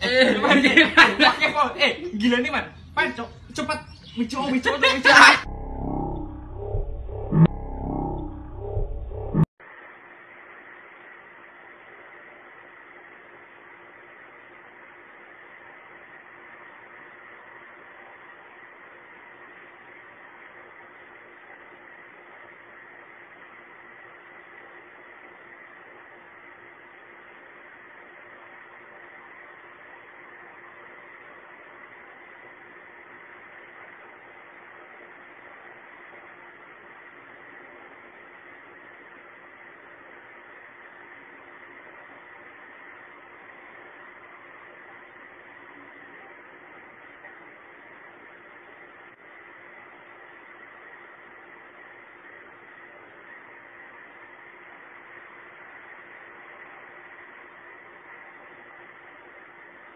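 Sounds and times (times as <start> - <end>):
faint low hum: 0.0 - 9.5.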